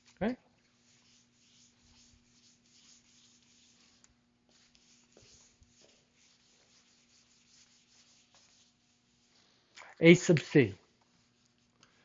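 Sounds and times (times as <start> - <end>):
eraser wiping a whiteboard: 0.8 - 9.6, 11.1 - 11.7.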